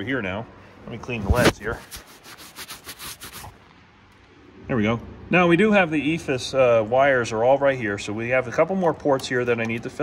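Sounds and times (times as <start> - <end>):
rubbing against microphone: 1.1 - 3.6.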